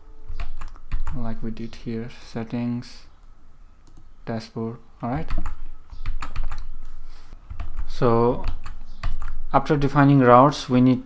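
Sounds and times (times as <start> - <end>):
computer keyboard keystrokes: 0.4 - 1.2, 5.3 - 6.8, 7.5 - 9.4.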